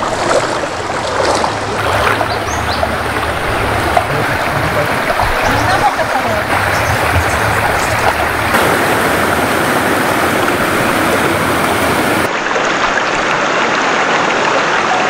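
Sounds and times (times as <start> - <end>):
floodwater rushing: 0.0 - 15.0.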